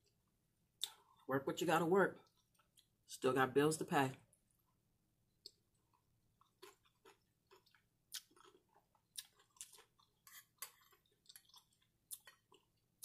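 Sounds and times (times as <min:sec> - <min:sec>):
close-up chewing: 0:05.4 - 0:12.8.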